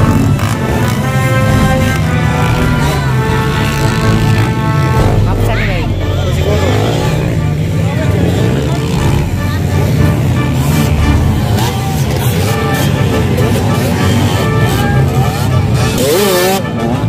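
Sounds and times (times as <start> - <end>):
background music: 0.0 - 17.0
dirt bike engines revving: 0.0 - 17.0
voices: 0.0 - 17.0.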